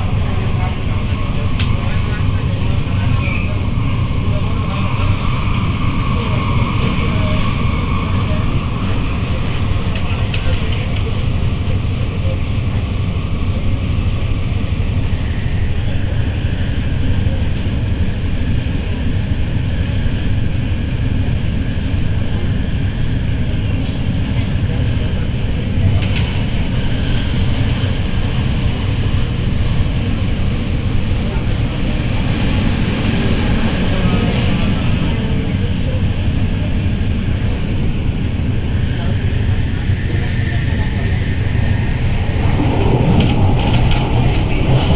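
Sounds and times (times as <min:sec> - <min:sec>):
train wheels rumbling on rail: 0:00.0 - 0:44.9
rushing noise: 0:26.2 - 0:44.9.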